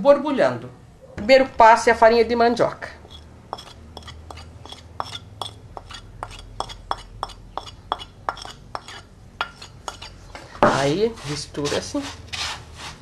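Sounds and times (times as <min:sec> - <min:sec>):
spoon scraping china saucer: 0:03.0 - 0:13.0.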